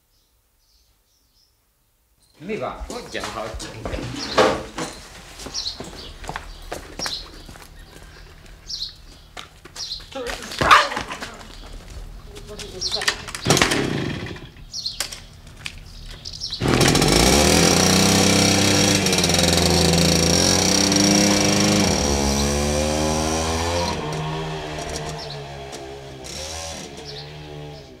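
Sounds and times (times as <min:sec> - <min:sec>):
moped two-stroke engine: 0:12.9 - 0:14.7, 0:16.6 - 0:28.0.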